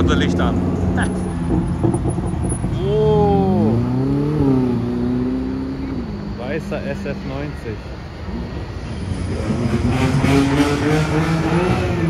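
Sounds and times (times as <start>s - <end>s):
sports car engine accelerating: 0.0s - 7.5s, 8.3s - 12.0s.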